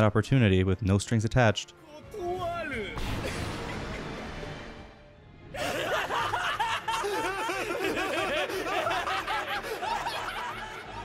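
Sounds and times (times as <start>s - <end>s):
man laughing mockingly: 5.6s - 11.0s.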